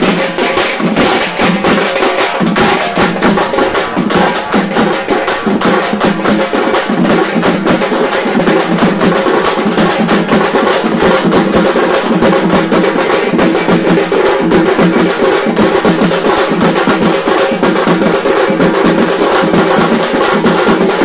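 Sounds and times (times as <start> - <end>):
large drums beaten fast: 0.0 - 21.0.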